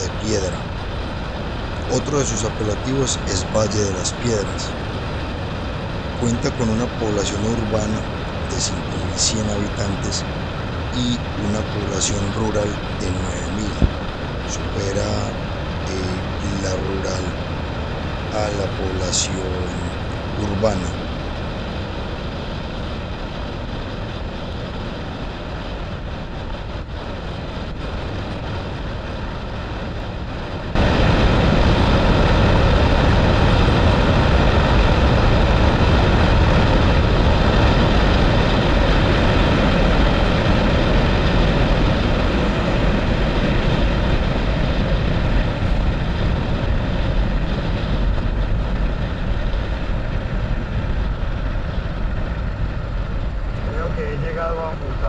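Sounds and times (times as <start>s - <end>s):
wind noise: 0.0s - 55.0s.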